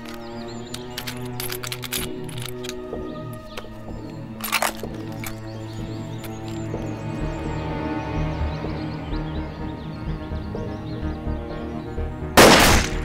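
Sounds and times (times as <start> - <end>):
metallic clicks of rifle handling: 0.0 - 5.4
background music: 0.0 - 13.0.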